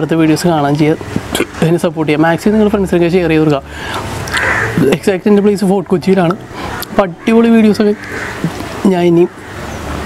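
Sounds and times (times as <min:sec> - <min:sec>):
man speaking: 0:00.0 - 0:03.7, 0:04.8 - 0:08.0.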